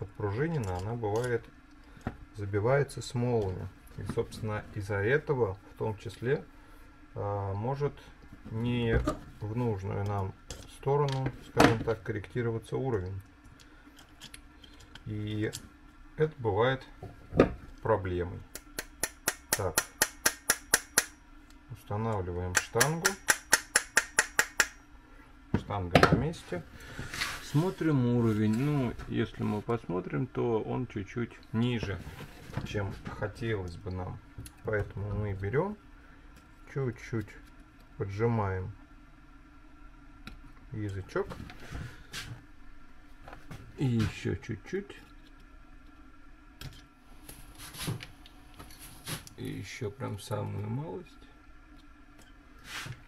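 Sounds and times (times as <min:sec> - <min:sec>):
low steady hum: 0:00.0 - 0:53.0.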